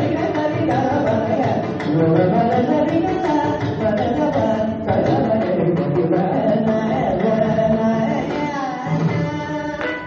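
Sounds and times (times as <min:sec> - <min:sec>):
man singing with ornaments: 0:00.0 - 0:10.0.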